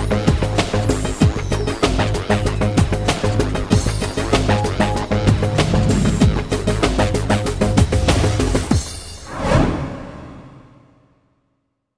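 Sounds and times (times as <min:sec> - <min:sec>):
closing theme music: 0:04.5 - 0:10.9
whoosh effect: 0:05.0 - 0:11.1.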